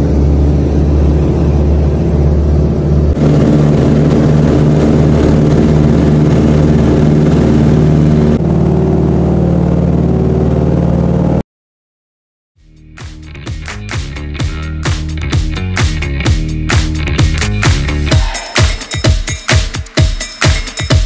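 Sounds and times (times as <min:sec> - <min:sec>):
radial aircraft engines running: 0:00.0 - 0:11.4, 0:12.8 - 0:16.4, 0:17.0 - 0:19.0.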